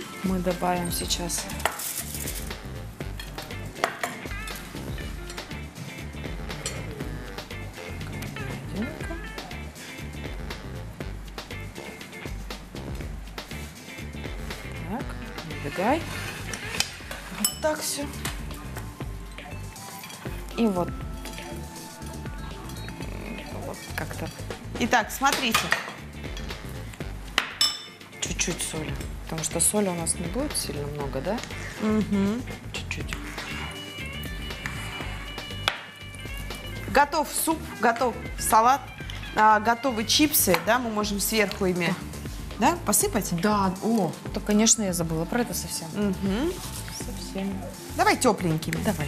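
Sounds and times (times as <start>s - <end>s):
background music: 0.0s - 49.0s
forks clinking on glass bowl: 0.8s - 2.5s, 17.2s - 18.4s, 19.8s - 20.4s, 27.6s - 28.6s
tableware clinking: 0.8s - 2.5s, 3.2s - 4.6s, 16.7s - 18.4s, 25.3s - 26.6s, 27.4s - 28.0s.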